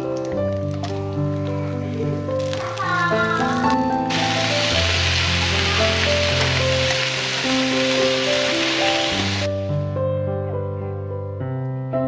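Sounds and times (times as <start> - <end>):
keyboard background music: 0.0 - 12.0
vegetables sizzling in oil: 2.4 - 9.6.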